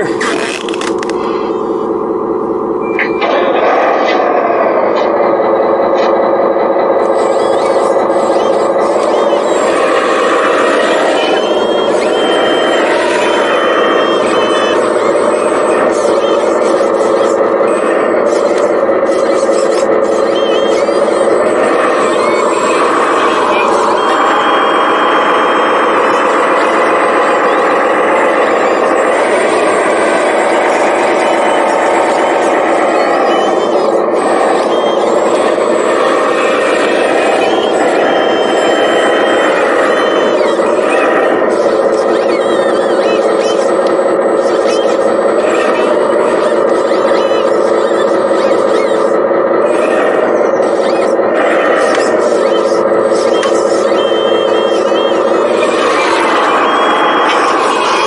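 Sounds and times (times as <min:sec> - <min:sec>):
electric motor whine: 0:07.0 - 0:54.0.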